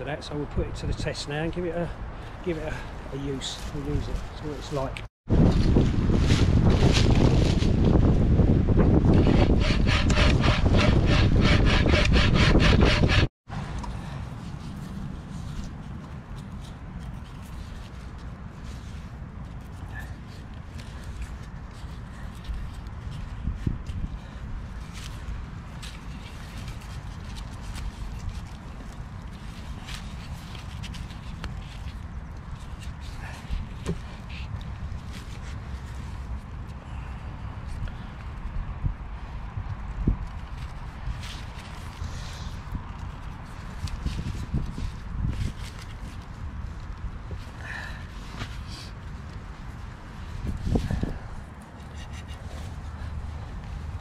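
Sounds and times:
rustling and cord ticks: 0:14.5 - 0:36.8.

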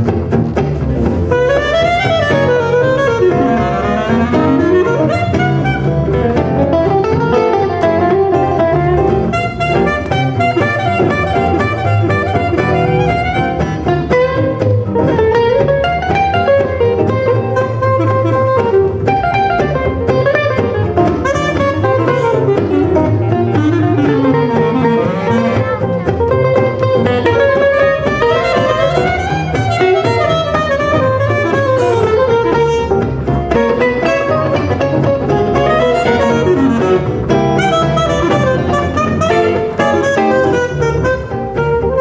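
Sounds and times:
acoustic guitars playing rhythm: 0:00.0 - 0:42.0
double bass: 0:00.0 - 0:42.0
clarinet lead line: 0:01.3 - 0:42.0.

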